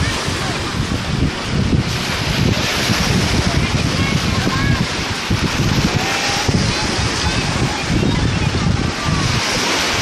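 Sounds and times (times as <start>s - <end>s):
sea surf: 0.0s - 10.0s
wind buffeting microphone: 0.0s - 10.0s
distant voices: 3.2s - 10.0s.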